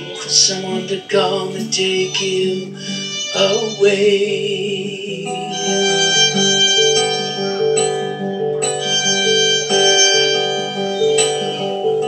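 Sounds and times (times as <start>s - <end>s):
acoustic guitar strumming chords: 0.0s - 12.0s
violin playing melody: 0.0s - 12.0s.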